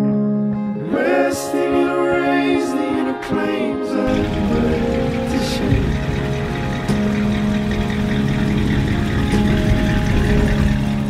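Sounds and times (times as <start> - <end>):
background music: 0.0 - 11.0
pickup truck engine rumbling: 4.1 - 11.0.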